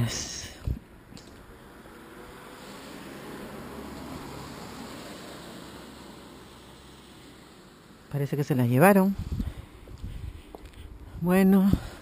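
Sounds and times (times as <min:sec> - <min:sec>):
vehicle passing: 0:00.9 - 0:11.1.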